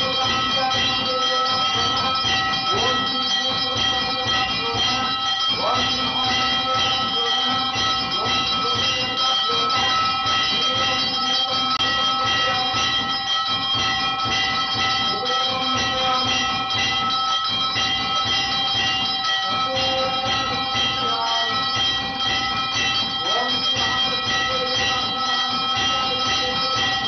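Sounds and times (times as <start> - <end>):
temple bells ringing rapidly: 0.0 - 27.0.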